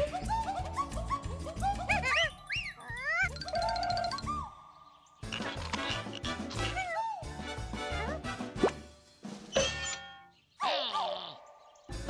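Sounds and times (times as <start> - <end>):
playful cartoon music: 0.0 - 12.0.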